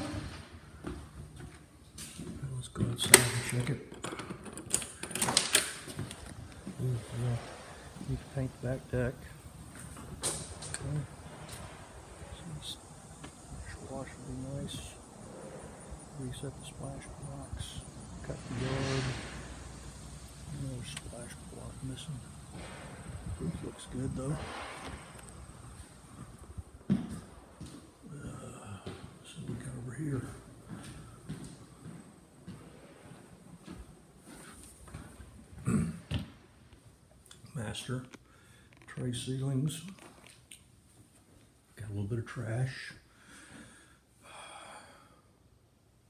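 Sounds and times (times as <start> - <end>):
footsteps: 0.0 - 3.1, 5.8 - 36.4
door handling noise: 3.1 - 6.6
door lock clicks and rattles: 3.9 - 5.9.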